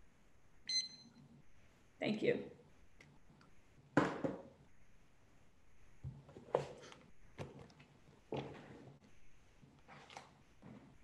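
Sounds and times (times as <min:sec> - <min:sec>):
digital timer beep: 0:00.7 - 0:01.2.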